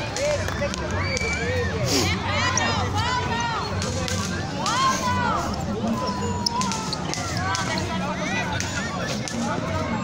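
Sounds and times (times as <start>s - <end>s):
players shouting: 0.0s - 10.0s.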